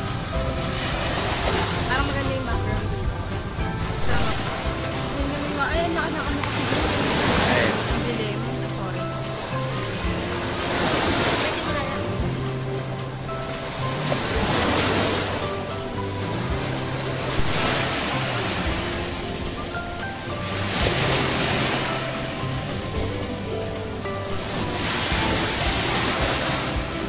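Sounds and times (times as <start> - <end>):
music playing: 0.0 - 27.0
sea waves washing onto beach: 0.0 - 27.0.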